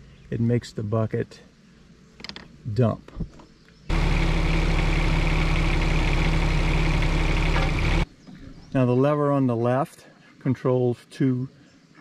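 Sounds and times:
excavator diesel engine running: 0:03.9 - 0:08.0.

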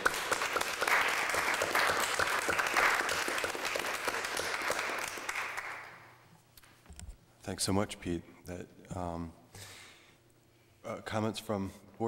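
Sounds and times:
group applauding: 0:00.0 - 0:06.1.

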